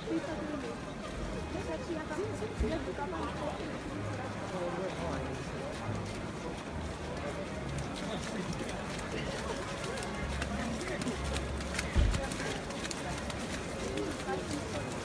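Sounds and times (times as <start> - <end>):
faint voices talking: 0.0 - 15.0.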